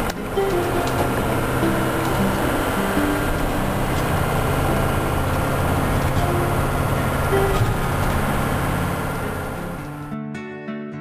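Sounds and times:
bus engine and road noise: 0.0 - 10.1.

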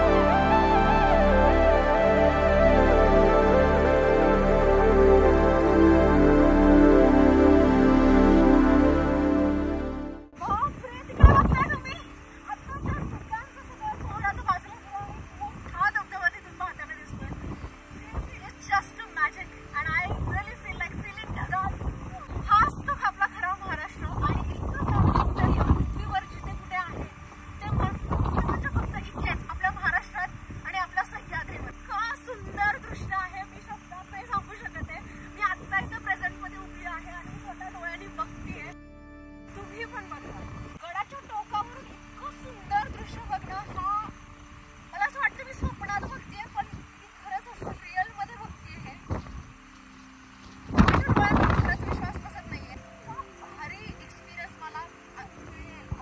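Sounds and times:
woman speaking: 10.4 - 17.4, 18.0 - 38.8, 39.6 - 44.1, 45.0 - 49.0, 50.8 - 56.0
gusty wind buffeting microphone: 24.0 - 29.8, 50.7 - 52.7.

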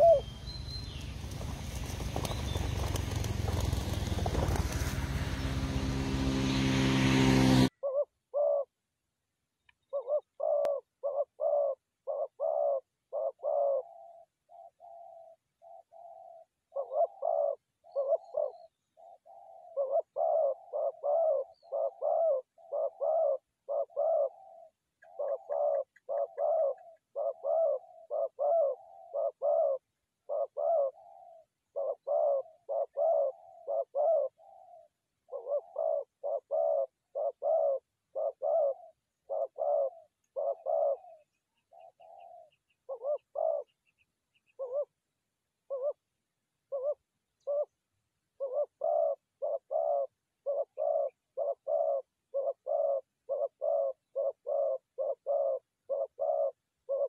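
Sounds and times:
dove cooing: 0.0 - 6.6, 7.7 - 8.8, 9.8 - 45.0, 45.6 - 46.1, 46.7 - 47.8, 48.4 - 57.0.

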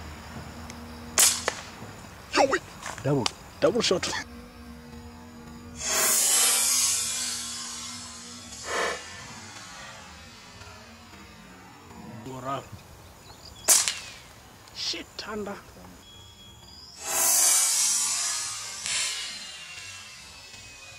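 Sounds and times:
sharp crack: 1.1 - 2.0, 13.6 - 14.4, 17.0 - 20.1.

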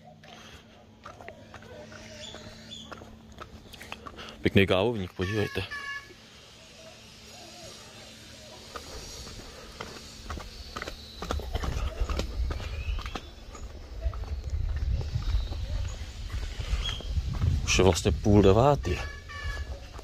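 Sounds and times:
footsteps on flagstone path: 0.0 - 5.4, 8.1 - 20.0
low microphone rumble: 11.4 - 20.0.

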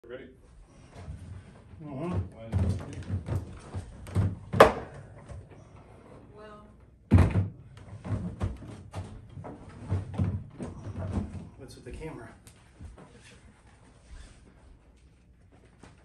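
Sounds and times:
piano thumping on wooden board: 2.0 - 5.4.

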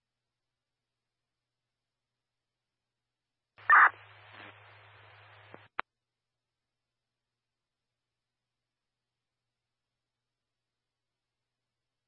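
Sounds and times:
faint radio static hiss: 3.6 - 5.8
radio chirp: 3.6 - 5.8
radio click: 3.6 - 5.8.

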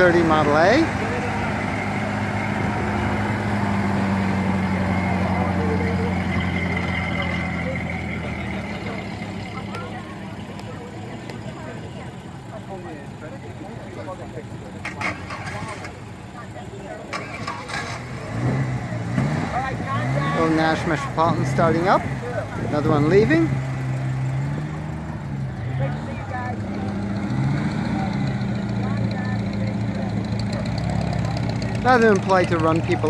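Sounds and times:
car engine idling: 0.0 - 33.0.

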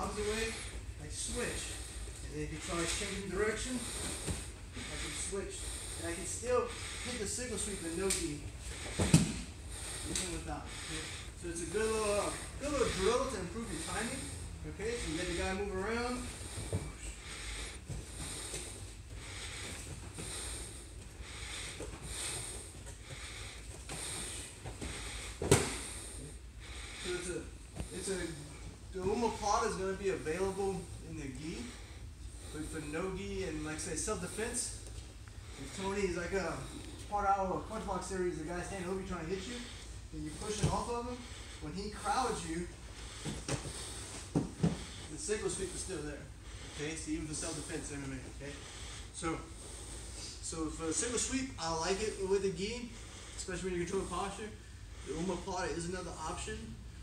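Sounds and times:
heavy hard breathing: 0.0 - 57.0
bodies thudding on mat: 25.4 - 25.8.

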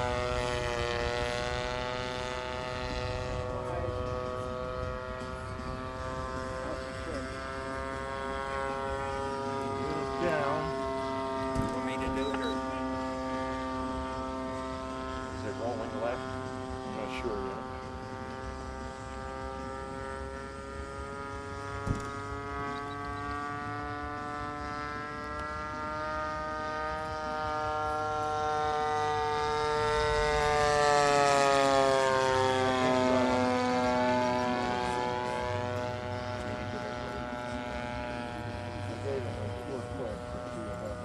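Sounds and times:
model airplane engine: 0.0 - 41.0.

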